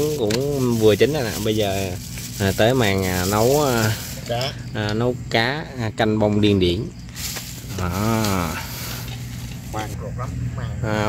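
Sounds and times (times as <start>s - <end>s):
charcoal fire hissing: 0.0s - 5.2s, 6.6s - 10.6s.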